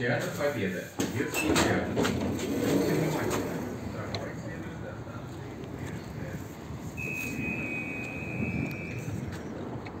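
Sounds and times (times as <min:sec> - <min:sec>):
street and traffic rumble: 0:00.0 - 0:10.0
high electronic beep: 0:07.0 - 0:09.1.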